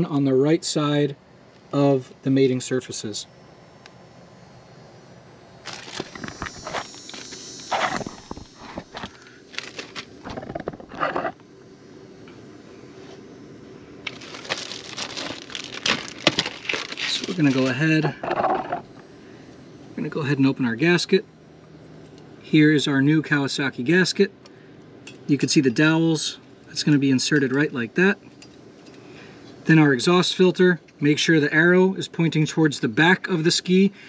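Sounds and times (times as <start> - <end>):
plastic bags crinkling: 5.6 - 6.6, 9.0 - 11.2, 14.0 - 18.9.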